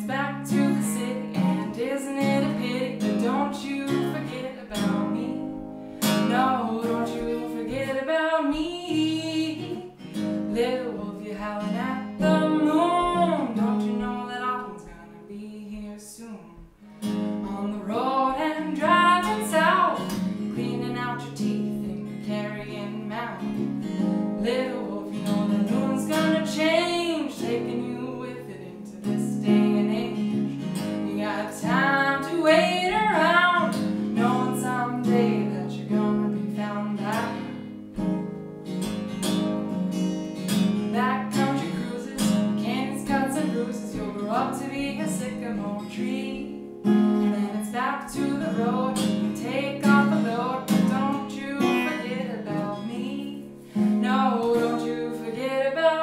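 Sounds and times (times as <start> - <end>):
woman singing: 0.0 - 38.1, 40.4 - 56.0
acoustic guitar strumming: 0.0 - 56.0.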